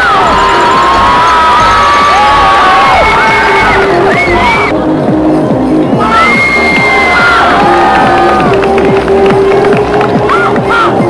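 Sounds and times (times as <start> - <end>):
high-pitched screams: 0.0 - 4.7, 6.0 - 8.4
crowd cheering and shouting: 0.0 - 11.0
loud music: 0.0 - 11.0.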